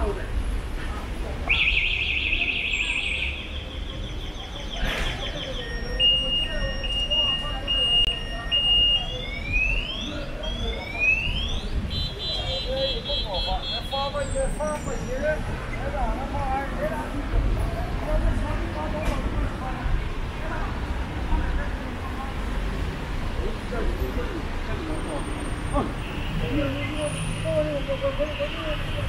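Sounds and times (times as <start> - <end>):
faint voices: 0.0 - 29.0
street traffic rumble: 0.0 - 29.0
car alarm siren: 1.5 - 3.6, 5.4 - 12.2.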